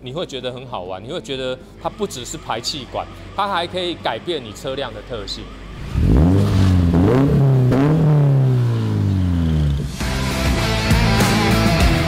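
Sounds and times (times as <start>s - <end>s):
music: 0.0s - 5.8s, 8.9s - 12.0s
car engine revving: 4.0s - 11.2s.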